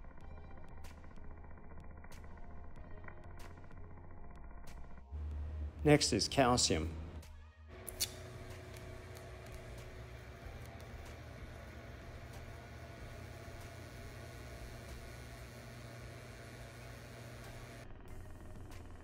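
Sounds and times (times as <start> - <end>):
low steady hum: 0.0 - 19.0
plasma flame hissing: 7.9 - 17.8.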